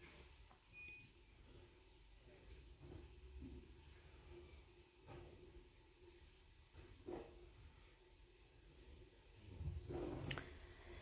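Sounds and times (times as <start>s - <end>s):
faint high beep: 0.7s - 1.2s.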